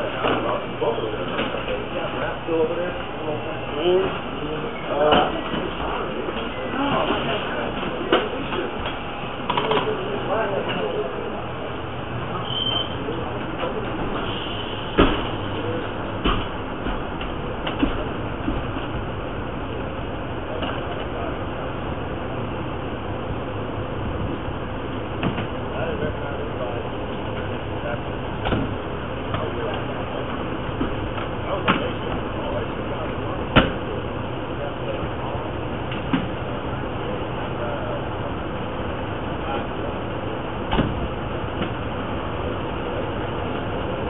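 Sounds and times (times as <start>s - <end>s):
voices murmuring: 0.0s - 44.0s.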